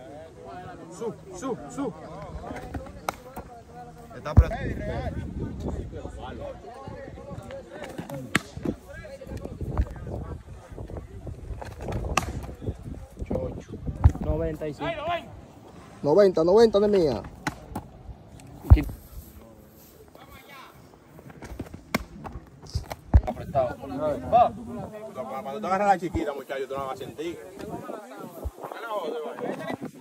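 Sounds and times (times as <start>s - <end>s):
faint voices: 0.0s - 16.4s, 17.0s - 30.0s
baseball smacking into mitt: 2.6s - 3.4s, 7.8s - 8.7s, 11.6s - 12.6s, 17.2s - 17.9s, 21.4s - 23.3s.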